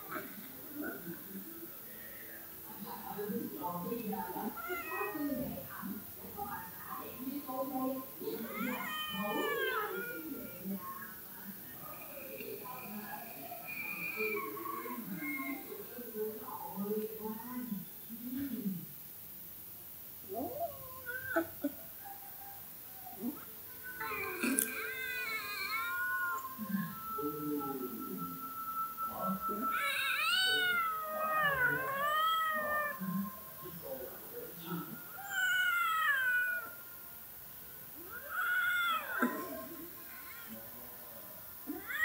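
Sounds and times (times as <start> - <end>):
cat meowing: 29.7 - 33.0.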